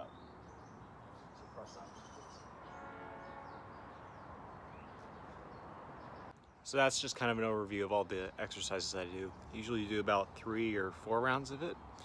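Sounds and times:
high bird chirps: 0.0 - 6.6
distant horn chord: 2.6 - 4.4.

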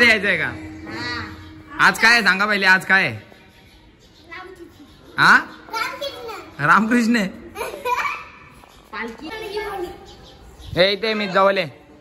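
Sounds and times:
children calling: 0.0 - 2.9, 4.1 - 11.5.

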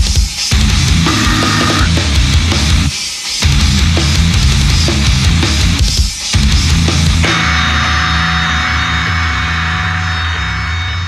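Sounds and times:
distorted metal chord: 0.6 - 5.8, 6.4 - 11.0.

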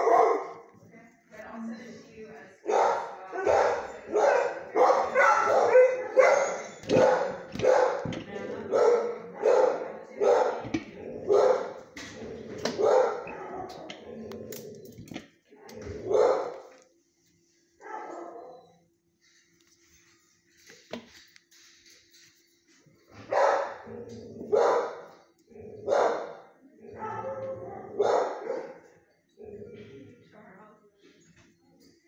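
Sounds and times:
dog barking: 0.0 - 0.7, 2.6 - 8.1, 8.7 - 11.8, 12.7 - 13.8, 16.0 - 16.7, 17.8 - 18.7, 23.2 - 25.1, 25.8 - 28.9.

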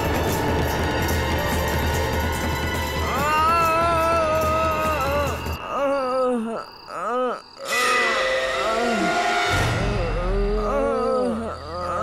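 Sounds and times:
eerie moaning wailing swoops: 7.2 - 12.0.

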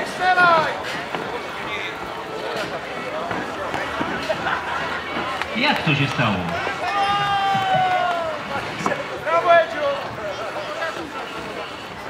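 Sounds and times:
crowd chatter: 0.0 - 12.0
players running: 0.0 - 12.0.

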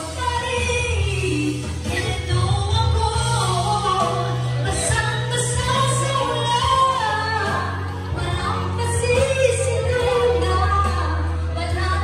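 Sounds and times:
backing music: 0.0 - 12.0
woman singing into microphone: 0.0 - 12.0.

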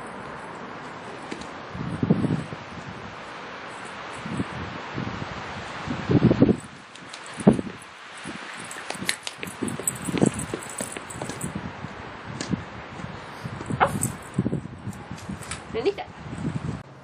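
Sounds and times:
footsteps on paved path: 0.0 - 4.6, 6.2 - 15.7
wind buffeting microphone: 0.0 - 17.0.

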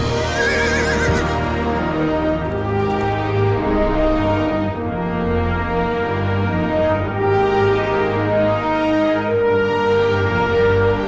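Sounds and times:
horse whinnying: 0.0 - 1.8
orchestral film score: 0.0 - 11.0.

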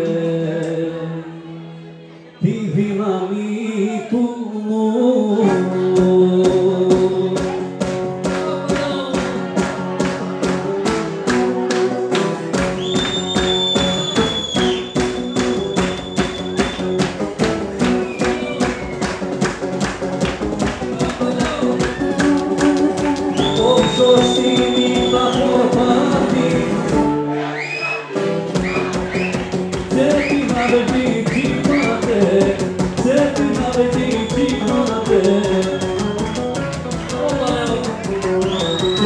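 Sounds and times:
rhythmic hand-clapping: 6.9 - 27.0, 28.5 - 39.0
plucked string band playing: 13.5 - 27.5, 28.2 - 39.0.

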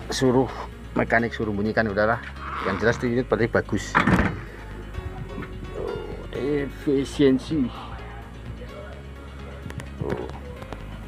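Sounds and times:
background music: 0.0 - 11.0
engine hatch clunk: 3.8 - 4.4.

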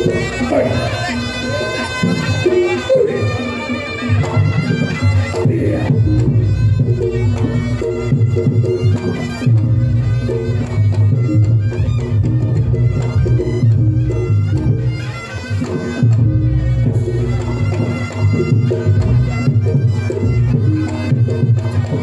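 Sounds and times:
hand drums: 0.0 - 22.0
reedy shawm melody: 0.0 - 22.0.

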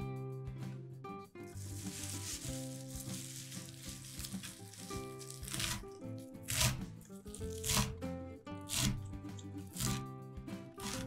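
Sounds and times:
background music: 0.0 - 11.0
knife slicing parsley: 1.5 - 8.0, 8.7 - 10.1, 10.7 - 11.0.

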